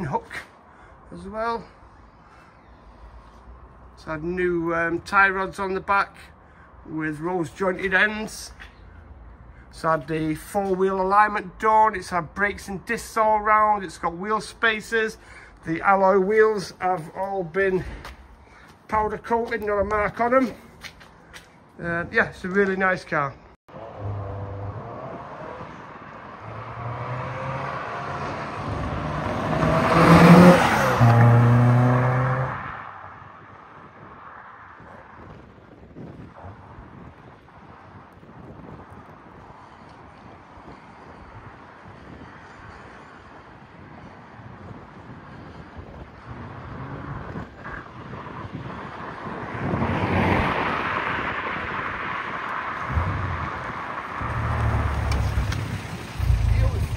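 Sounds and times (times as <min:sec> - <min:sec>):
sports car accelerating past: 0:23.8 - 0:33.2, 0:49.0 - 0:56.9.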